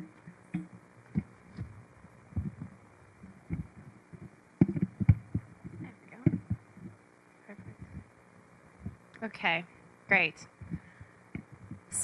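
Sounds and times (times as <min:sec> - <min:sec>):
faint room hiss: 0:00.0 - 0:12.0
soft muffled low thumps: 0:00.0 - 0:12.0.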